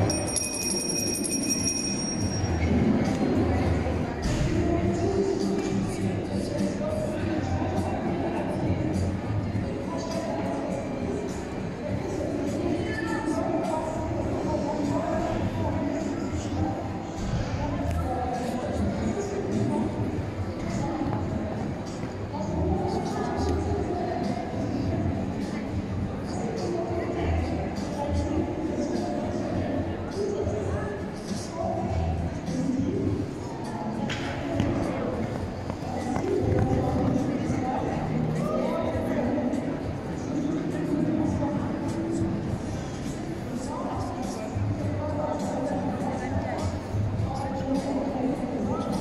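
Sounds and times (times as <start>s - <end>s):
high steady ringing tone: 0.0s - 3.0s
faint voices: 0.0s - 49.0s
low hall noise: 0.0s - 49.0s
music: 0.0s - 49.0s.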